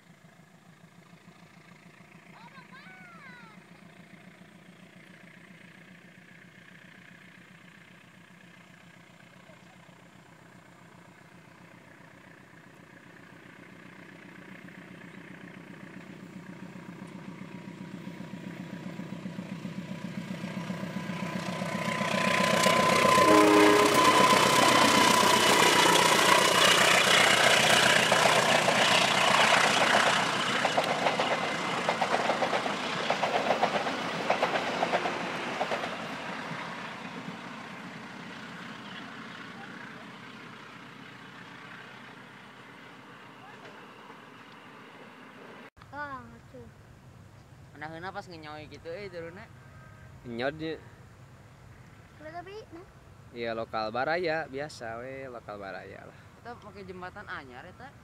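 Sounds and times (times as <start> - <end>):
locomotive engine drone: 0.0 - 53.3
train wheels clattering on rails: 15.6 - 37.9
train horn: 21.4 - 25.7, 49.5 - 50.3.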